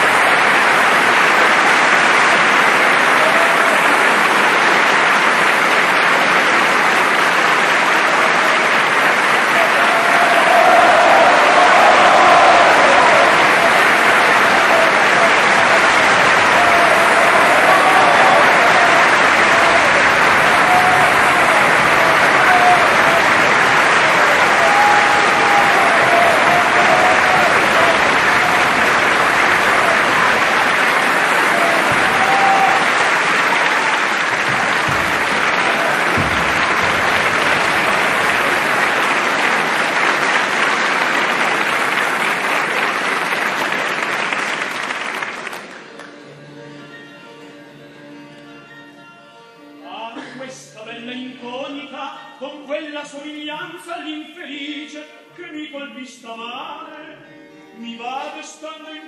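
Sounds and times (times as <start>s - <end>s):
audience applauding: 0.0s - 46.2s.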